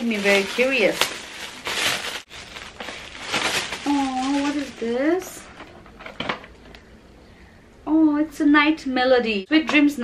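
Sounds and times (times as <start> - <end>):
metallic gift wrap tearing: 0.0 - 5.4.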